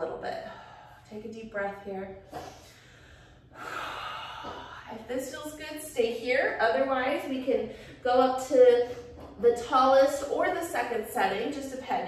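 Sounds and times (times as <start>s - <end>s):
woman breathing deeply: 0.4s - 1.1s, 2.3s - 5.0s.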